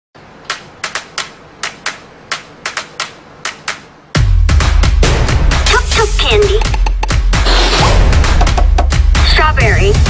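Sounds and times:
sharp dry clicks: 0:00.4 - 0:03.9.

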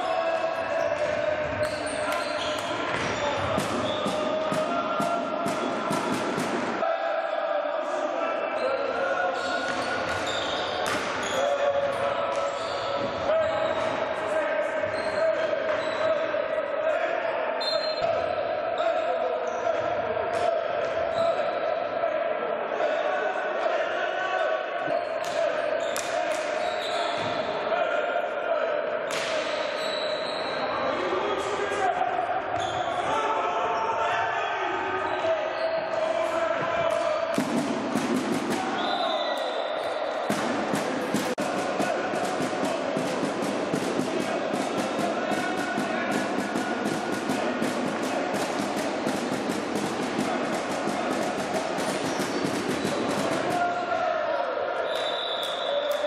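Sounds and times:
voices echoing in hall: 0:00.0 - 0:56.0
hockey sticks striking ball: 0:37.3 - 0:38.8, 0:40.3 - 0:53.7.

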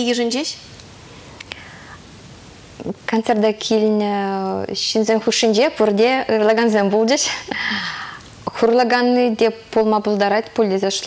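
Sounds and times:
soft breath: 0:01.0 - 0:02.1, 0:07.5 - 0:08.3.

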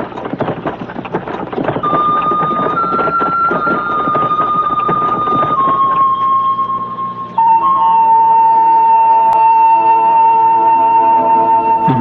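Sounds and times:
horse-drawn carriage rattling: 0:00.0 - 0:06.9
bamboo flute playing: 0:01.9 - 0:12.0.

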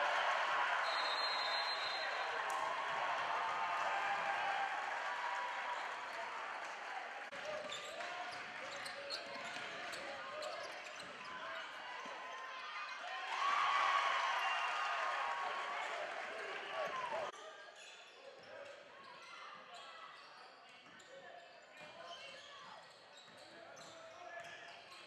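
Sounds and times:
voices in a gym: 0:00.0 - 0:25.0.

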